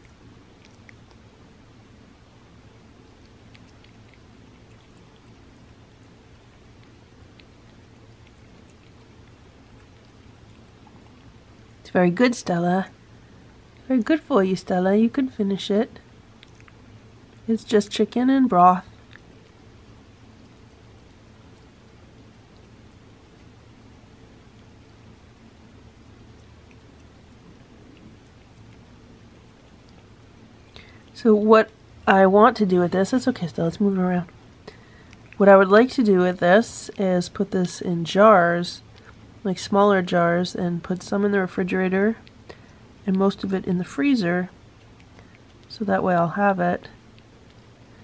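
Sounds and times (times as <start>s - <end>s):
cat lapping food: 0.0s - 11.9s, 16.0s - 18.1s, 18.8s - 32.1s, 33.4s - 37.8s, 44.5s - 48.0s
low room hum: 0.0s - 48.0s.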